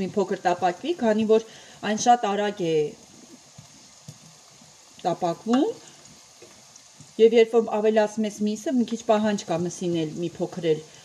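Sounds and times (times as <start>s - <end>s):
onion and meat sizzling in pan: 0.0s - 11.0s.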